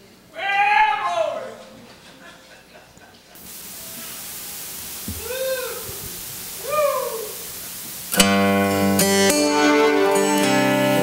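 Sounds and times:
steady system hiss: 0.0s - 11.0s
high voice-like calls: 3.8s - 7.5s.

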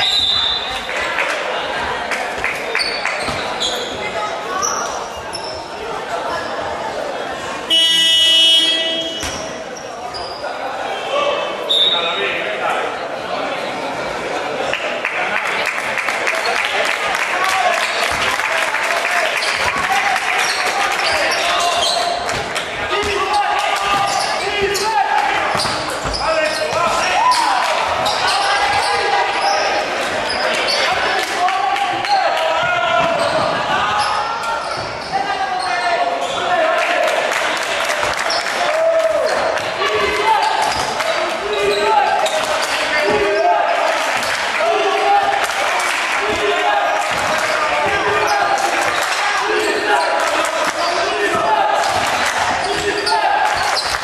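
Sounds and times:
indistinct voices echoing: 0.0s - 54.0s.

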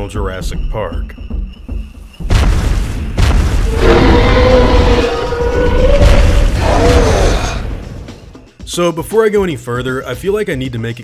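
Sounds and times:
heavy booms: 2.2s - 8.2s.

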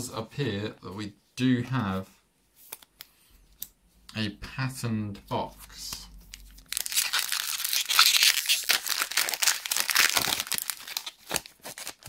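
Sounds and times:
foil wrapper crinkling and tearing: 6.3s - 12.0s.

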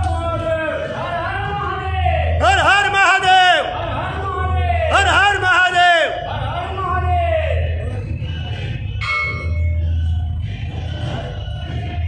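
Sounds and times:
low steady hum: 8.9s - 10.7s
temple bell ringing: 9.0s - 10.1s.

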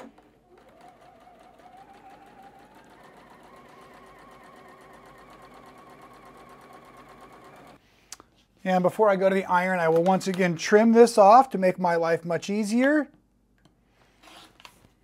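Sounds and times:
sewing machine stitching: 0.0s - 7.8s.

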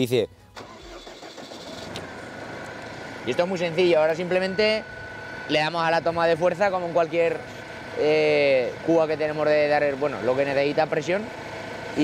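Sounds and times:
tractor diesel engine idling: 0.6s - 12.0s.

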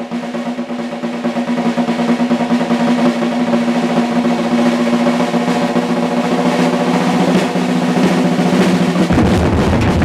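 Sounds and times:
snare drum roll: 0.0s - 10.0s.

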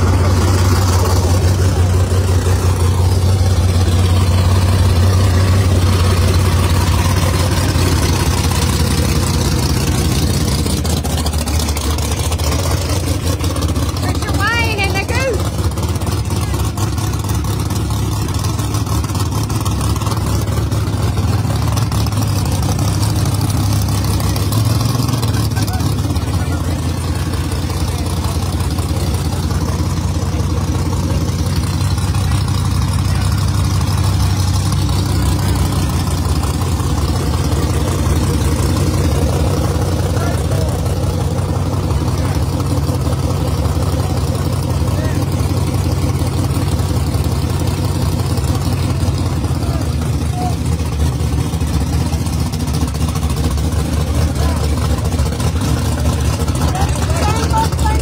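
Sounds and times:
race car engine idling: 0.0s - 58.0s.

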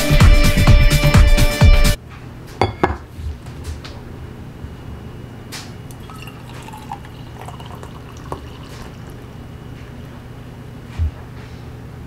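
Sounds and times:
low steady hum: 4.0s - 11.5s
coffee pouring into mug: 5.9s - 10.0s.

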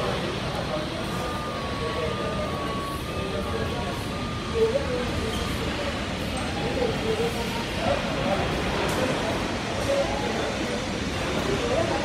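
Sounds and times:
indistinct voices talking: 0.0s - 12.0s
jet engines rumbling: 0.0s - 12.0s.

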